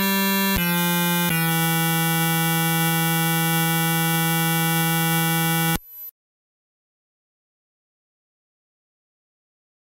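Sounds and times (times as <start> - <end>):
buzzing synthesized drone: 0.0 - 6.1.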